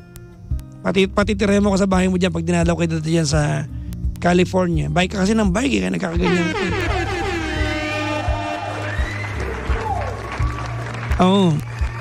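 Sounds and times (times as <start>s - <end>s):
steady low bass: 0.0s - 12.0s
melodic tones with sliding notes: 6.2s - 8.6s.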